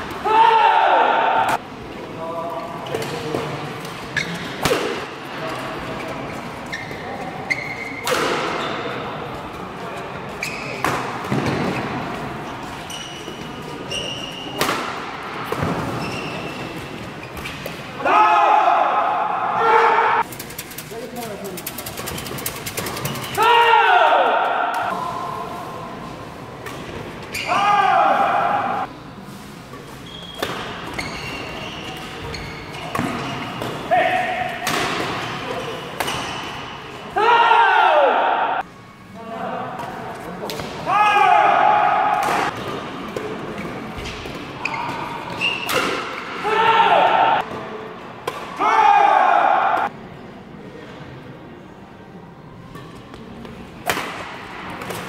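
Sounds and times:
people shouting: 0.2 - 1.6, 18.0 - 20.2, 23.4 - 25.1, 27.4 - 28.9, 37.1 - 38.6, 40.9 - 42.5, 46.4 - 47.4, 48.6 - 49.9
shoe squeaks on court floor: 4.1 - 4.6, 6.2 - 8.9, 10.3 - 10.9, 12.5 - 14.6, 15.9 - 17.7, 27.3 - 27.6, 30.0 - 33.7, 44.6 - 46.2
racket hitting shuttlecock: 4.6 - 5.1, 34.4 - 35.4, 42.1 - 46.4, 53.8 - 55.0.

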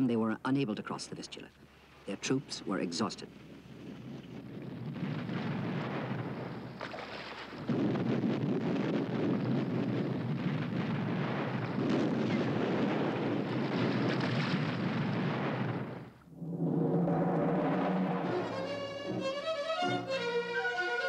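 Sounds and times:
rumble of explosions: 7.6 - 19.3.

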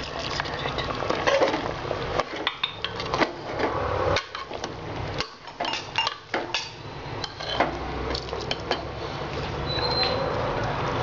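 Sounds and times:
metal clinks and scrapes on pot: 5.2 - 7.7.

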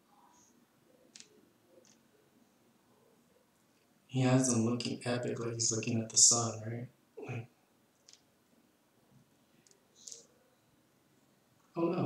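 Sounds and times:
computer mouse clicks: 1.1 - 2.0, 8.0 - 8.2.

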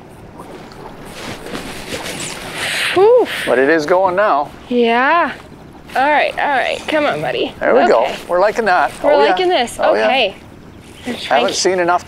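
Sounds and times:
water around a boat: 0.0 - 12.0
wind: 0.0 - 12.0.

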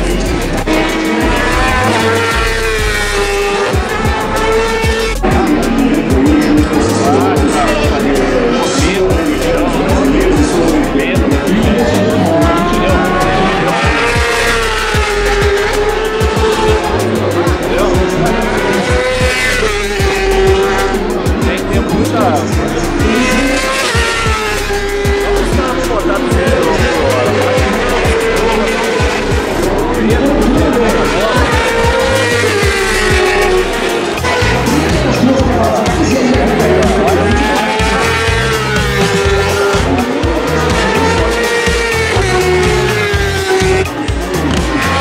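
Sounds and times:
music over loudspeakers: 0.0 - 45.0
racing motorbikes passing: 0.0 - 45.0.

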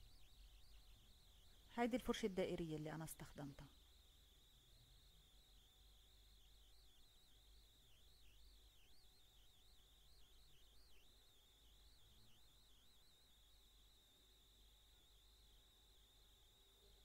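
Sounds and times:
faint background hiss: 0.0 - 17.0
thin high wavering whine: 0.0 - 17.0.

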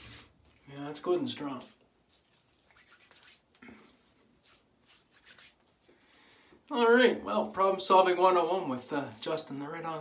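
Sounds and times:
hands rubbing skin: 1.6 - 5.9.

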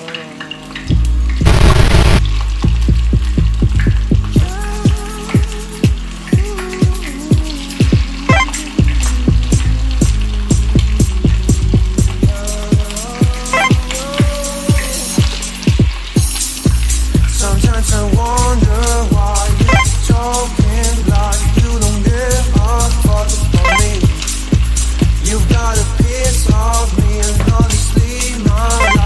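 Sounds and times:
background music with beat: 1.5 - 29.0
meat sizzling in oil: 14.5 - 17.4.

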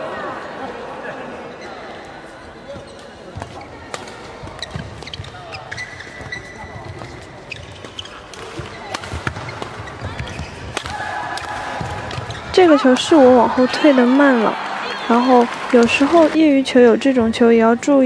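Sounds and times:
crowd chatter: 0.0 - 18.0
footwork on court: 2.7 - 13.9
racket hitting shuttlecock: 7.8 - 14.4.

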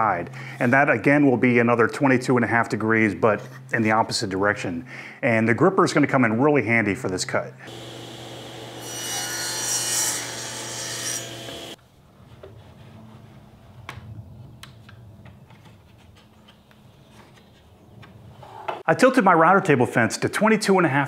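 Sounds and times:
table saw cutting wood: 7.7 - 11.8.

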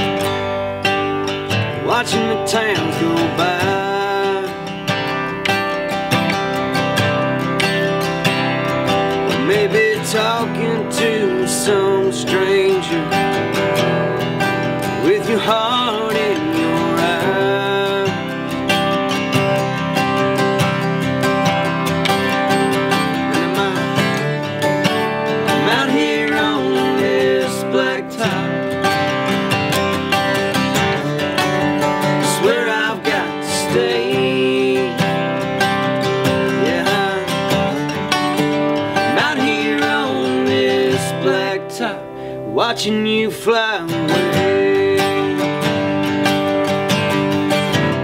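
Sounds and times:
acoustic guitars strummed and picked: 0.0 - 48.0.

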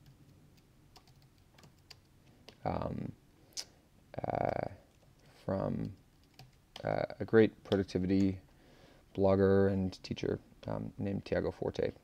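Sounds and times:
faint keyboard typing: 0.0 - 8.4.

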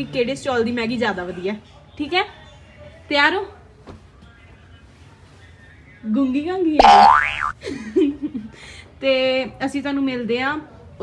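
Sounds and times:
cartoon boing sound effect: 6.8 - 7.5.

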